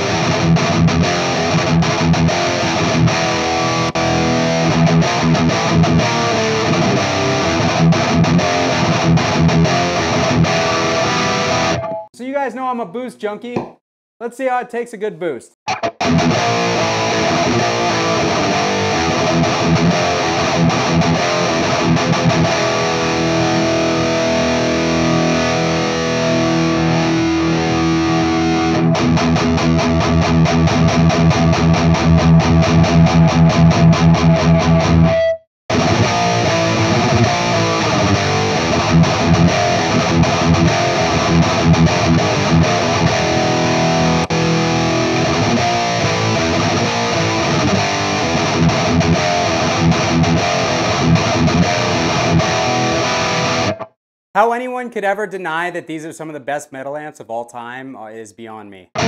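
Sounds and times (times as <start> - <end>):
distorted electric guitar riffing: 0.0 - 12.1, 15.7 - 53.9.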